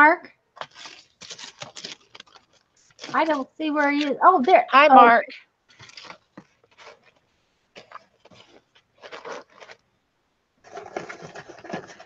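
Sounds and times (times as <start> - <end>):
paper rustling: 0.6 - 4.6, 5.7 - 9.9.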